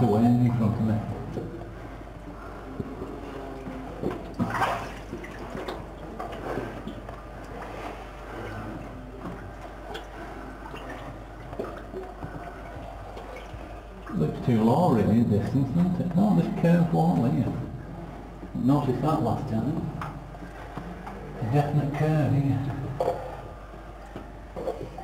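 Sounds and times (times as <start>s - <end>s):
water sloshing and splashing: 0.0s - 25.0s.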